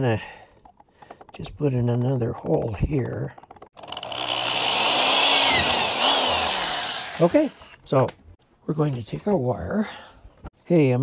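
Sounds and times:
electric drill boring plastic: 0:03.8 - 0:07.6.

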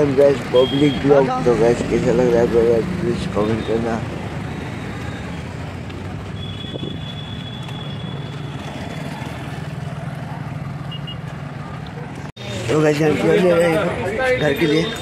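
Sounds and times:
traffic engine and road noise: 0:00.0 - 0:15.0.

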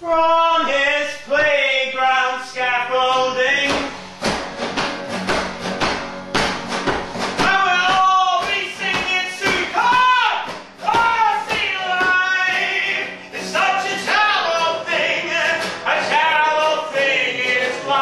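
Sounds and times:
man singing wordless notes: 0:00.0 - 0:04.0, 0:07.4 - 0:18.0
acoustic guitar strumming: 0:00.0 - 0:18.0.

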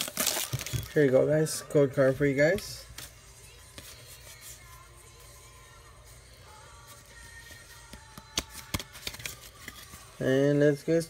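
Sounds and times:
faint background music: 0:00.0 - 0:11.0
trading cards clicking: 0:07.9 - 0:09.9.

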